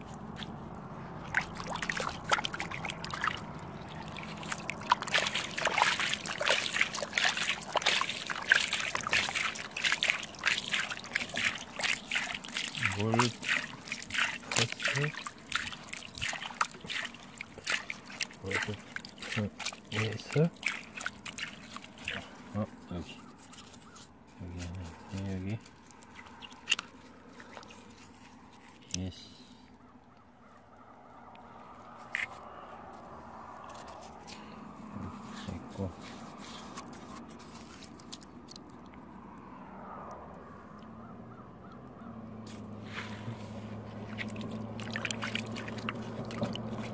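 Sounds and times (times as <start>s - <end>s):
hand sloshing in muddy water: 0.0s - 28.9s, 33.4s - 39.0s, 42.5s - 46.9s
bird calling: 2.5s - 24.2s.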